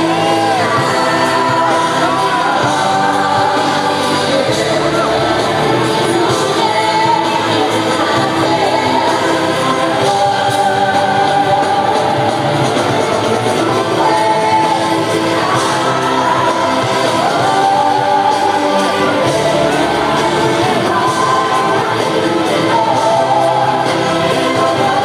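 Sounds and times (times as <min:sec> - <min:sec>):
live band playing: 0:00.0 - 0:25.0.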